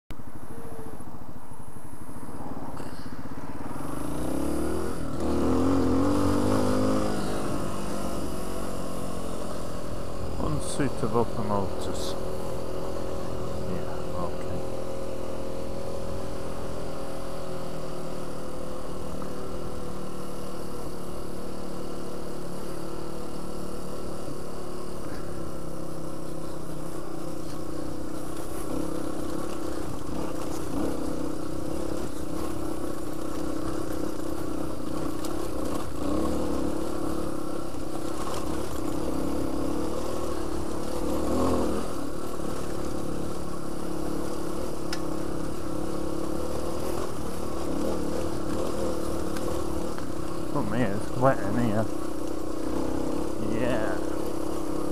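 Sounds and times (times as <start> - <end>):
motorcycle engine running: 0.1 - 54.9.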